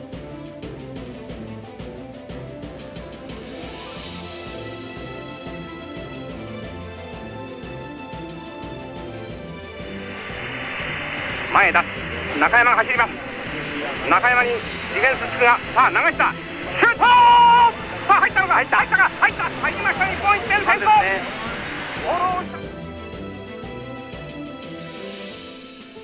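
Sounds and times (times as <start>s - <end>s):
background music: 0.0s - 26.0s
excited voice shouting: 16.0s - 21.3s, 22.0s - 22.6s
crowd noise: 16.6s - 22.6s.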